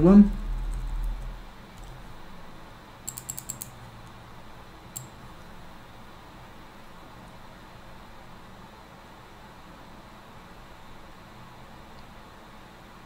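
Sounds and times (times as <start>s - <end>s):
computer keyboard clicks: 0.6s - 2.0s, 3.1s - 3.8s.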